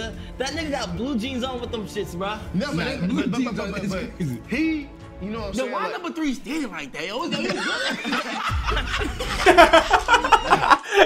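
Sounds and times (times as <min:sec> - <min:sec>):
men talking: 0:00.0 - 0:11.0
men chuckling: 0:02.6 - 0:04.5, 0:07.2 - 0:11.0.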